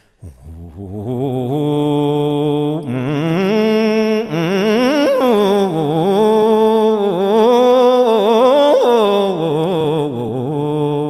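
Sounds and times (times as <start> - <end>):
man chanting with vibrato: 0.2 - 11.0.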